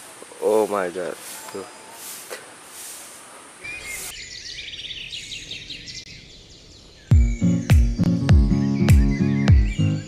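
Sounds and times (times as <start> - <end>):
outdoor ambience hiss: 0.0 - 8.8
birds chirping: 0.0 - 10.0.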